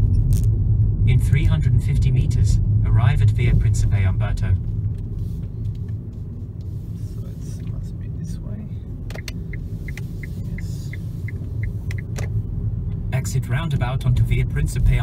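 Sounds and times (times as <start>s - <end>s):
road and tyre rumble: 0.0s - 15.0s
turn indicator ticking: 7.5s - 15.0s.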